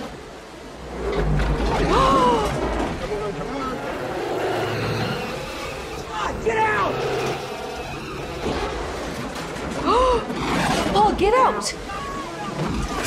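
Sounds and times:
voices crying out: 11.4 - 13.0.

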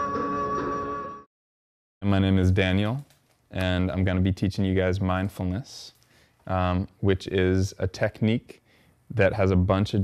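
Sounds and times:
man speaking: 2.0 - 10.0.

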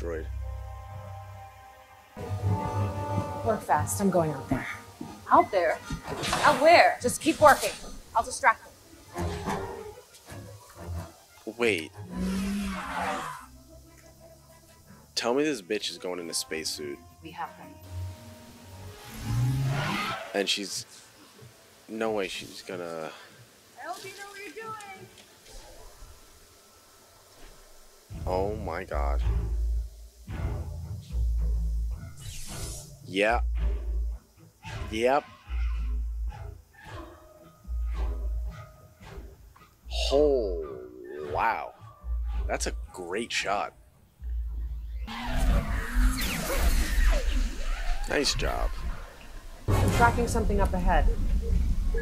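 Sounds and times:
faint music: 0.0 - 52.0.

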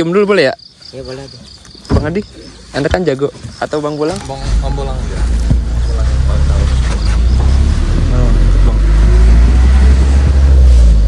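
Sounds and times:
wind: 0.0 - 11.0
low rumble of moving minibus: 4.3 - 11.0.

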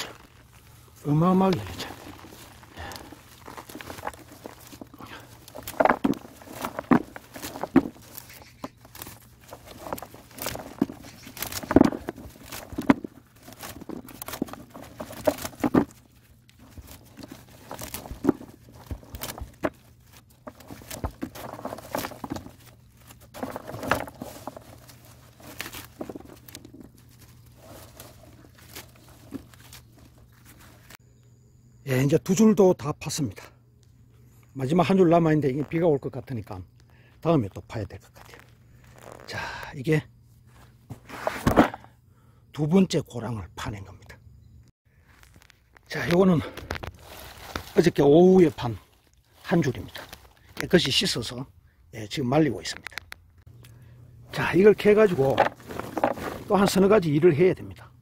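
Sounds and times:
leaves and stems rustling: 0.0 - 31.0, 38.0 - 39.3, 44.9 - 51.4, 52.6 - 58.0
soil and pods knocking on plastic: 1.8 - 27.0.

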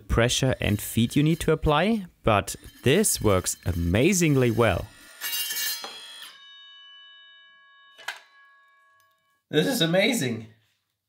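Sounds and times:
circular saw cutting steel: 0.2 - 9.1
cut steel ringing: 0.4 - 9.3.

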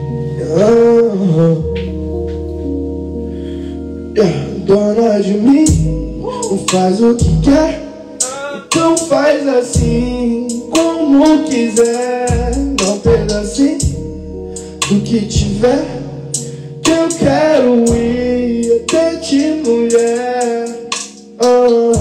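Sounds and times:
man singing into a microphone: 0.3 - 2.0, 4.1 - 14.0, 14.8 - 22.0
instrumental beat with bass: 1.6 - 22.0.

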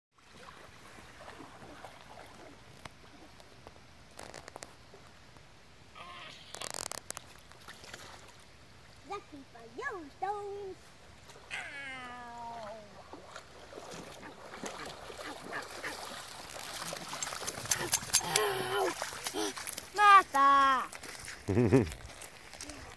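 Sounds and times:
water sloshing and splashing: 0.2 - 5.1, 6.6 - 9.1, 10.8 - 11.8, 12.4 - 22.9
dog steps in water: 12.5 - 22.9.

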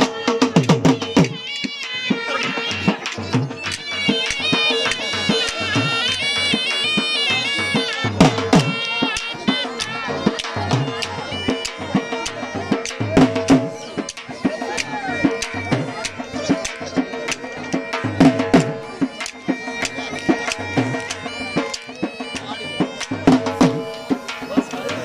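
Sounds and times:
quick steady drum beats: 0.0 - 25.0
sustained wind instrument tones: 0.0 - 25.0.

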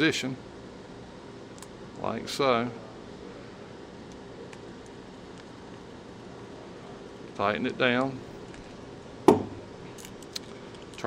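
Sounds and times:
sharp knock: 9.3 - 9.6.

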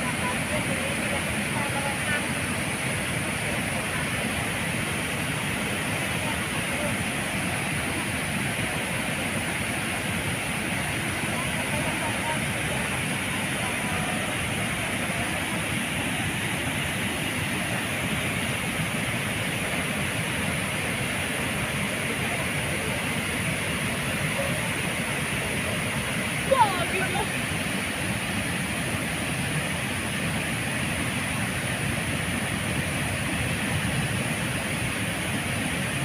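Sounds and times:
water rushing over weir: 0.0 - 36.0.

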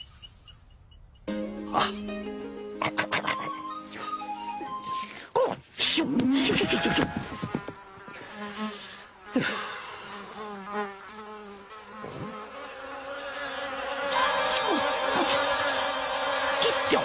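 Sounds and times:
steady buzzing: 11.8 - 17.0.

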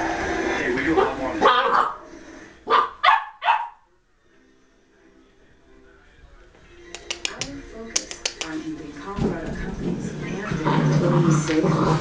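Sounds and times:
puppy barking: 1.4 - 2.0, 2.7 - 3.9.

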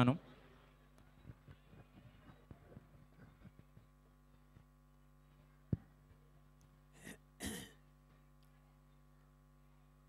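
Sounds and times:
faint electrical hum: 0.0 - 10.0
person clearing throat: 7.0 - 7.9.

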